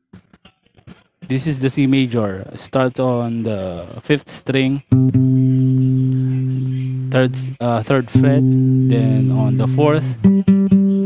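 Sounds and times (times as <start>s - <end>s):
acoustic guitar note plucked: 4.9s - 11.0s.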